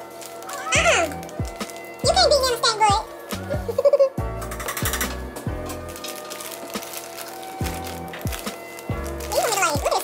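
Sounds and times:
background music with deep bass: 0.0 - 10.0.

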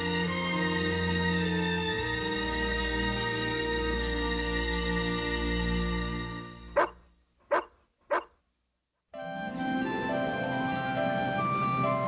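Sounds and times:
dog barking: 6.8 - 8.4.

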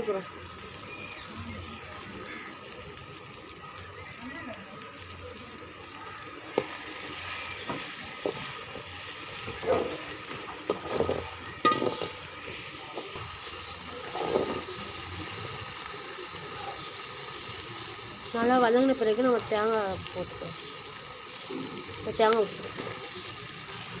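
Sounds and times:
onions and tomatoes sizzling: 0.0 - 24.0.

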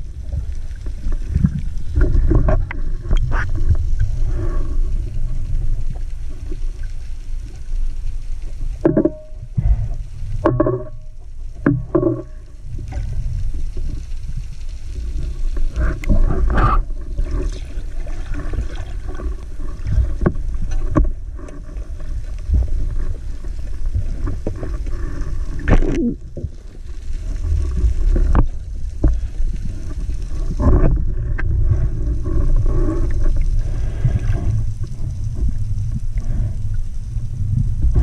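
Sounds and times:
underwater moving water rumble: 0.0 - 38.0.

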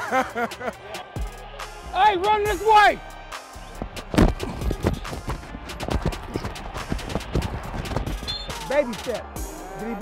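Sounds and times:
music: 0.0 - 10.0
footsteps running in cleats: 4.1 - 8.3.

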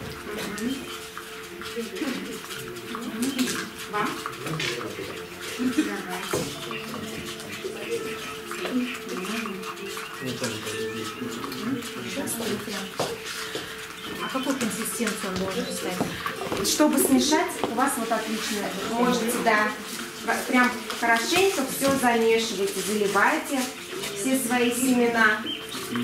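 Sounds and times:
low talk of people: 0.0 - 26.0
spoons stirring in plastic bowls: 0.0 - 26.0.

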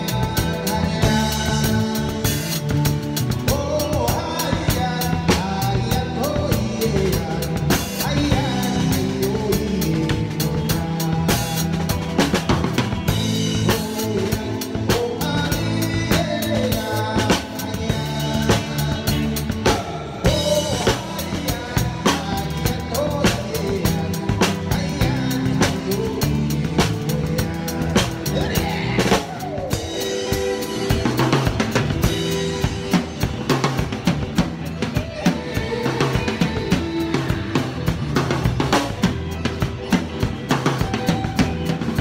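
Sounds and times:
drums playing steady beat: 0.0 - 42.0
electric bass line: 0.0 - 42.0
live band music: 0.0 - 42.0.

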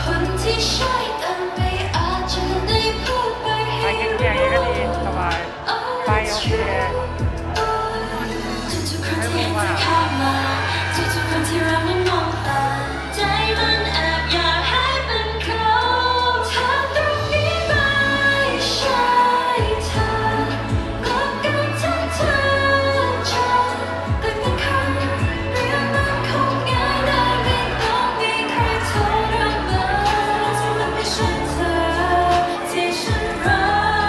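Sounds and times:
pop backing track with bass beat: 0.0 - 34.0
woman singing pop vocals: 0.0 - 34.0.

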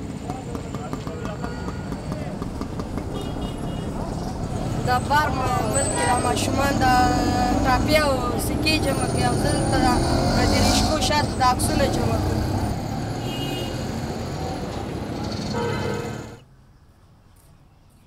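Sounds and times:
street traffic noise: 0.0 - 18.0.

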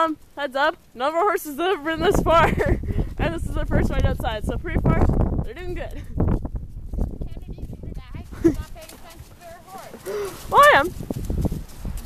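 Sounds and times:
hoofbeats on muddy track: 0.0 - 12.0.

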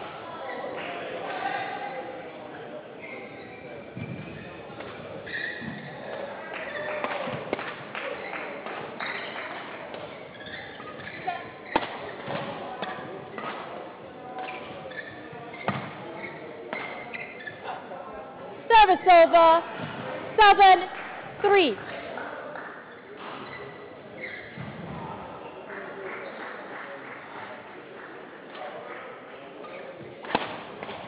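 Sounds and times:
shoes squeaking on court: 2.5 - 17.8, 22.9 - 25.0
racket hitting shuttlecock: 11.6 - 13.7, 30.2 - 31.0.

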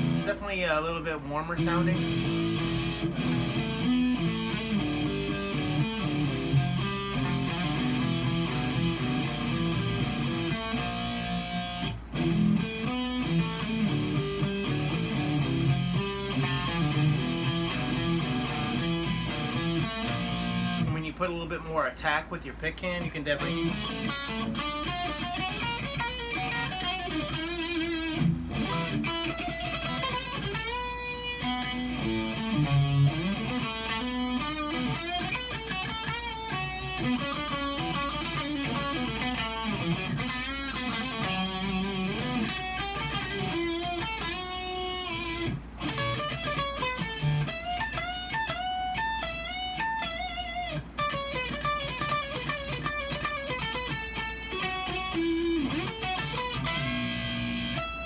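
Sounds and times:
electric guitar lead lines: 0.0 - 58.0.

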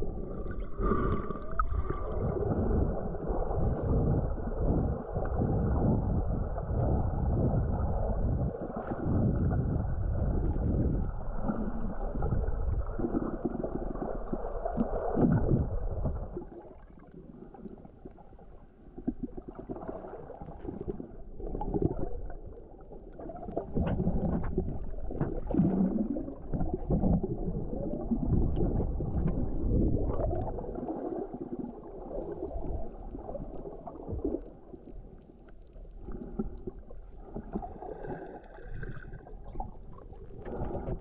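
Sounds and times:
underwater water gurgling: 0.0 - 41.0.

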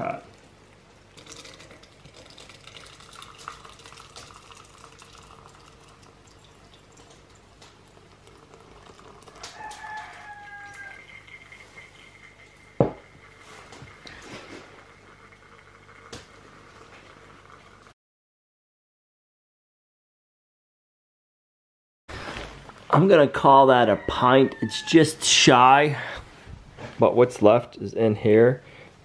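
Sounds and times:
syrup trickling into a jar: 1.1 - 17.8
rooster crowing: 9.2 - 11.9, 23.7 - 25.8.

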